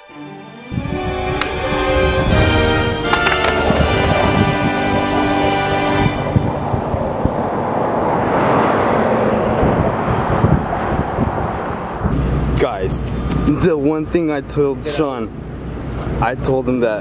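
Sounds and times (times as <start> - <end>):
low traffic hum: 0.7 - 17.0
skateboard wheels rolling on asphalt: 1.1 - 12.7
people's voices: 3.0 - 7.0.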